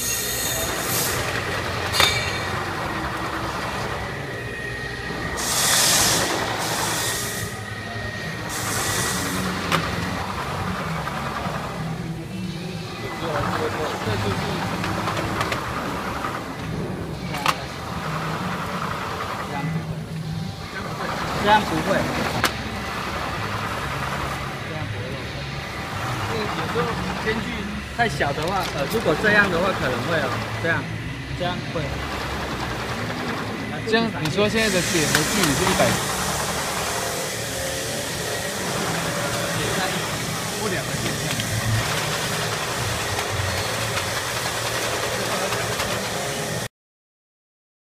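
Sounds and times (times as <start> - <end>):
machine and conveyor humming: 0.0 - 46.7.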